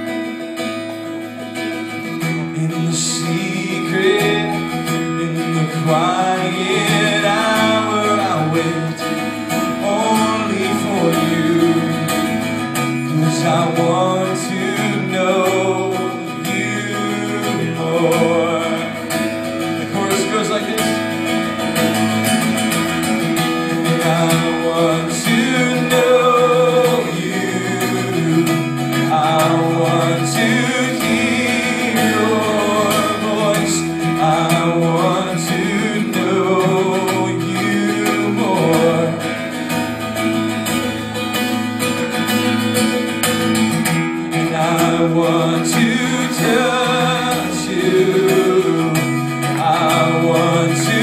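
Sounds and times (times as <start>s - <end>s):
acoustic guitar strumming: 0.0s - 51.0s
man singing: 1.6s - 42.8s, 44.1s - 51.0s.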